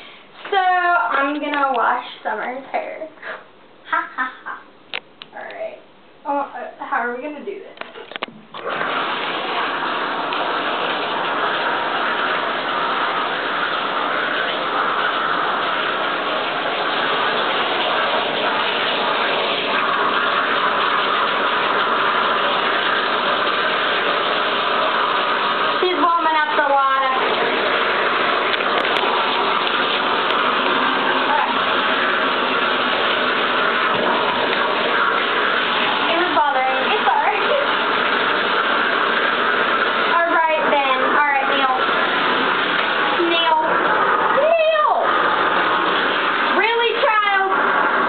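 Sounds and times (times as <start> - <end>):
water running from bathtub tap: 0.0 - 5.7, 6.3 - 48.0.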